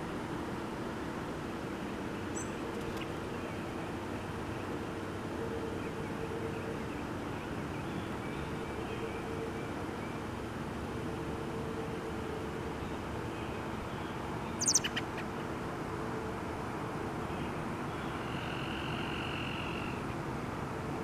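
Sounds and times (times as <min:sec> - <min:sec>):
bird chirping: 0:02.3 - 0:03.6, 0:12.8 - 0:15.3.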